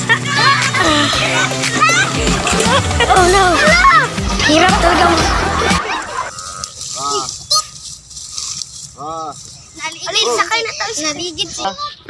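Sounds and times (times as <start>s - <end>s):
background music: 0.0s - 6.3s
voices chattering: 0.0s - 12.0s.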